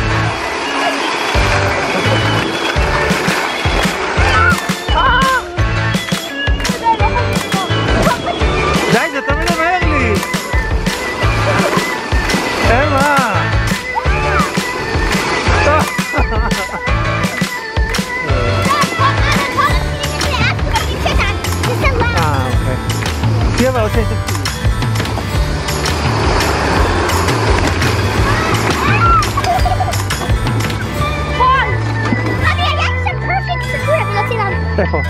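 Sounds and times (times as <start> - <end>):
rollers rumbling: 0.0 - 33.1
background music with beat: 1.4 - 35.0
metal roller slide rumbling: 24.7 - 32.8.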